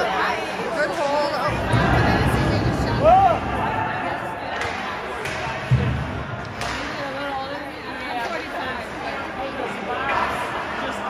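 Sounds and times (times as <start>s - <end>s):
spectators talking: 0.0s - 11.0s
hockey sticks clacking on puck: 4.5s - 5.8s, 6.4s - 7.3s.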